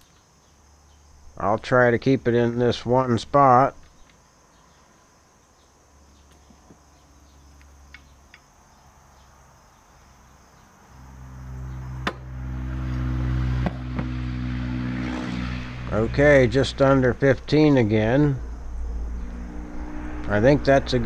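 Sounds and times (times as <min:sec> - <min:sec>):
low engine drone: 0:11.0 - 0:21.0.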